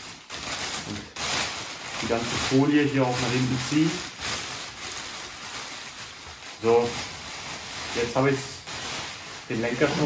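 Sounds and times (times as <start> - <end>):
plastic film crinkling: 0.0 - 10.0.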